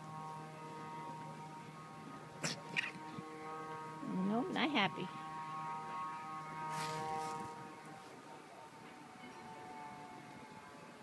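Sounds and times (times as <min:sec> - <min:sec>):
hum of held tones: 0:00.0 - 0:11.0.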